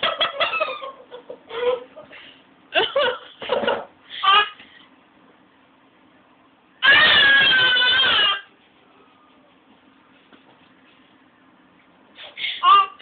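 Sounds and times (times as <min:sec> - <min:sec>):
toddler screaming: 0:06.8 - 0:08.5.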